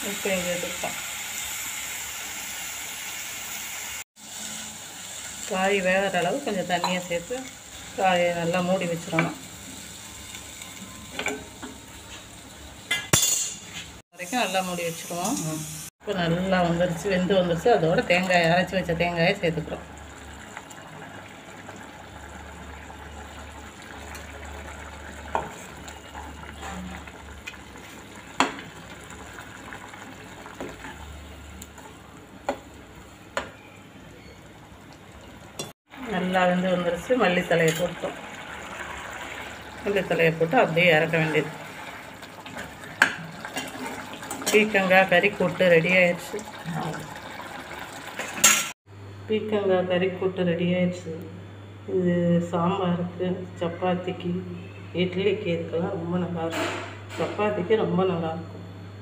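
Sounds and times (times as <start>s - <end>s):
vegetables sizzling in a pan: 0.0s - 33.8s, 34.4s - 48.8s.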